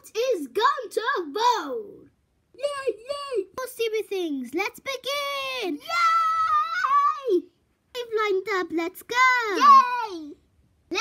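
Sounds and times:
child cheering: 5.4s - 7.4s, 9.5s - 10.3s.

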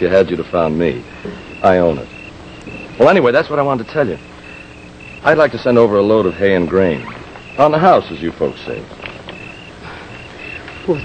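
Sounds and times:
crickets chirping: 0.0s - 11.0s
faint background hiss: 0.0s - 11.0s.

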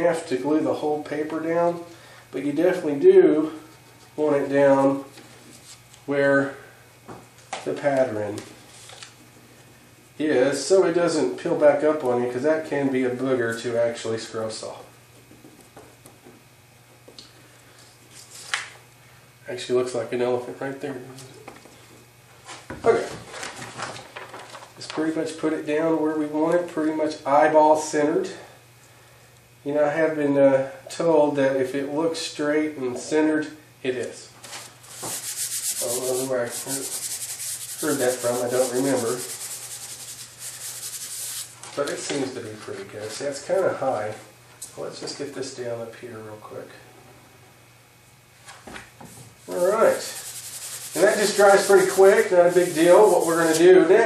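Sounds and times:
paper swish: 34.9s - 41.5s.

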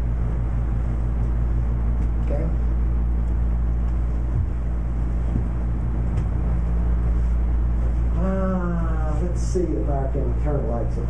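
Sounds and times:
low room hum and rumble: 0.0s - 11.0s.

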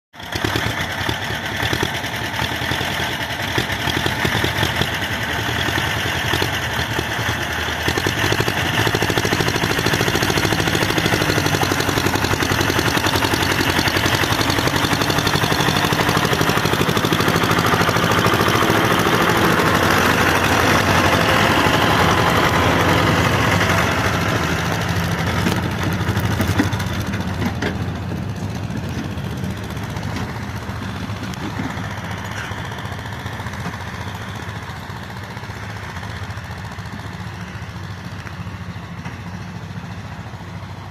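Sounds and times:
diesel tractor engines under load: 0.2s - 40.9s.

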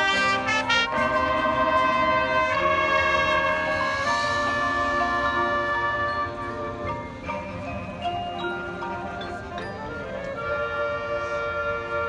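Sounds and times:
brass chord: 0.0s - 7.3s, 10.0s - 12.0s
bell-like mallet percussion: 0.0s - 11.0s.

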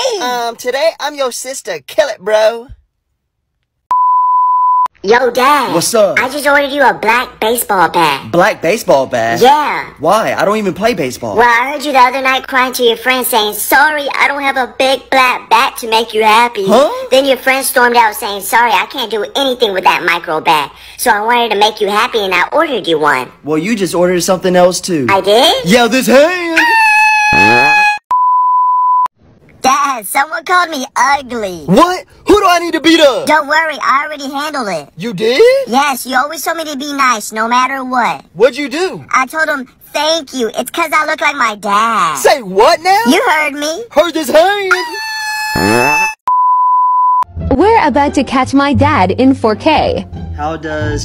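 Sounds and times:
voice: 0.0s - 2.8s, 5.0s - 26.7s, 27.4s - 27.8s, 29.6s - 45.0s, 45.6s - 46.0s, 47.5s - 51.0s
electronic beep: 3.9s - 4.9s, 45.6s - 47.3s.

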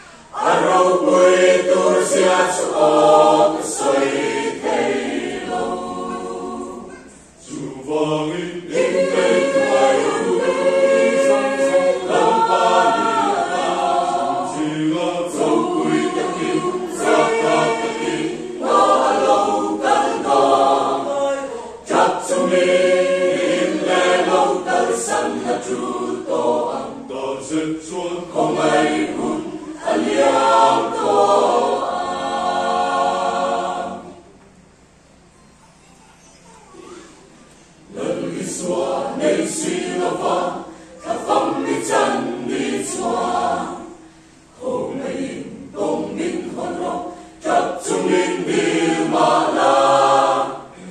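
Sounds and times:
mixed choir singing: 0.0s - 34.4s, 37.8s - 50.9s.

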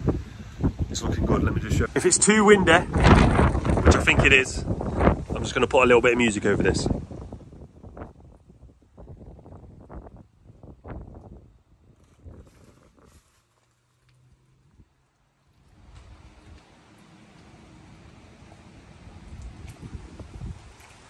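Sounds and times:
wind buffeting microphone: 0.0s - 13.4s, 15.7s - 21.0s.

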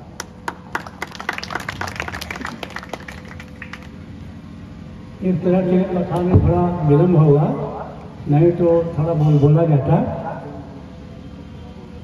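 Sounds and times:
faint steady hum: 0.0s - 12.0s
hand clapping: 0.2s - 3.9s.

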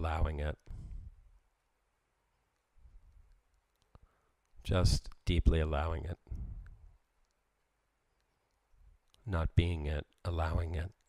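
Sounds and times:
man speaking: 0.0s - 0.7s, 4.6s - 6.3s, 9.2s - 11.0s.

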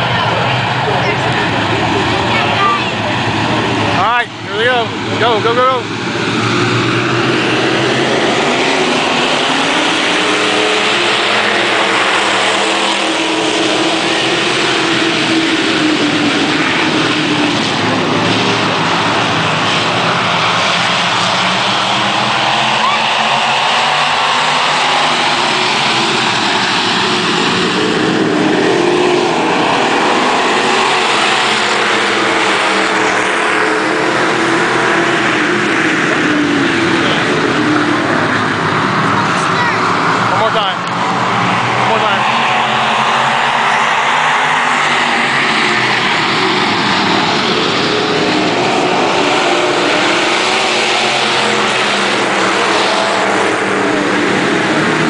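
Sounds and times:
race car engines passing: 0.0s - 55.0s.

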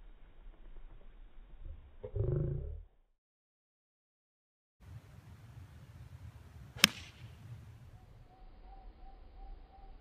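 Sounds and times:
golf club striking ball: 6.8s - 7.3s.

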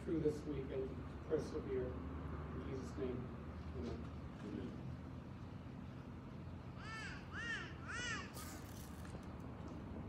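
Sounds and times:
bird calling: 6.7s - 8.9s.

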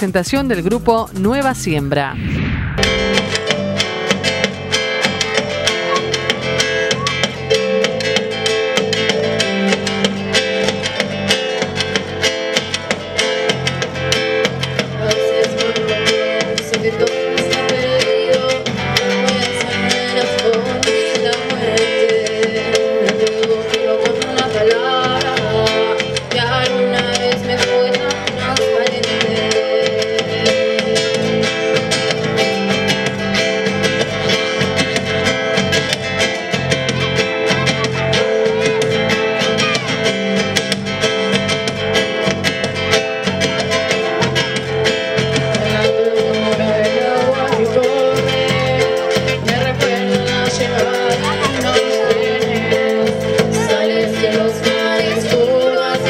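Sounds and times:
live band playing: 0.0s - 56.0s.

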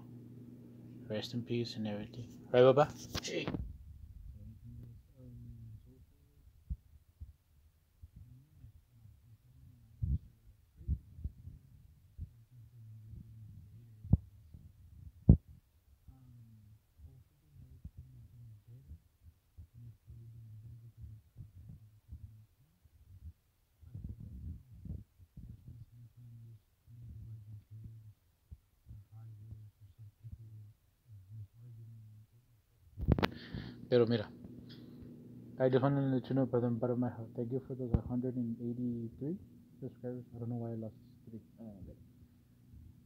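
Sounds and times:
faint low hum: 0.0s - 43.0s
muffled low thumps: 3.4s - 32.3s, 32.9s - 33.4s, 37.8s - 39.5s.

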